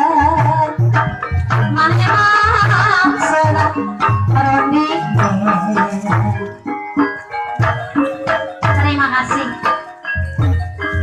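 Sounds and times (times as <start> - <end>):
gamelan percussion ringing: 0.0 - 11.0
low-pitched percussion strokes: 0.0 - 11.0.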